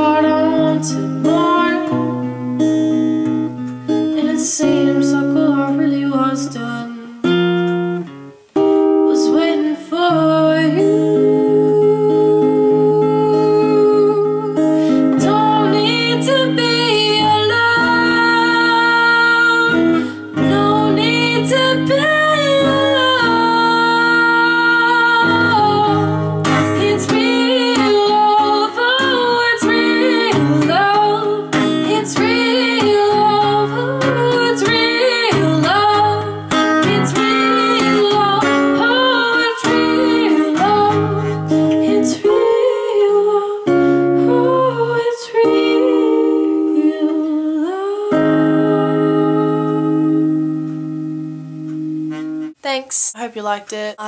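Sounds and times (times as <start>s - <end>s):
woman singing: 0.0s - 2.2s, 4.0s - 7.4s, 8.8s - 50.6s
strummed acoustic guitar: 0.0s - 43.0s, 43.6s - 45.0s, 48.2s - 52.6s.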